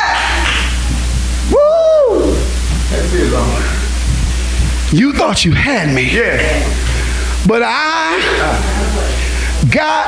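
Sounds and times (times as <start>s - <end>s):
sound system hum: 0.0s - 10.0s
held vocal shout rising in pitch: 1.5s - 2.5s.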